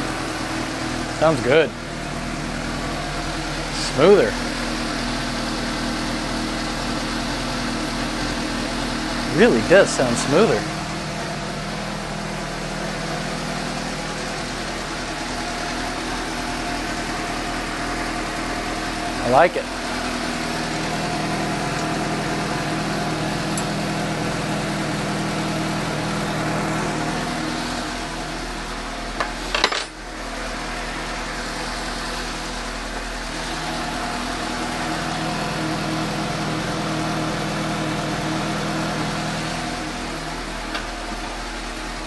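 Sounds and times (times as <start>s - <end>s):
motorcycle engine idling: 0.0s - 42.0s.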